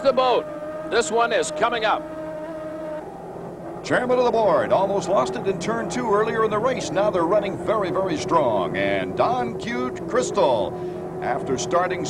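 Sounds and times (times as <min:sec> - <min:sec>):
powerboat engines droning: 0:00.0 - 0:12.0.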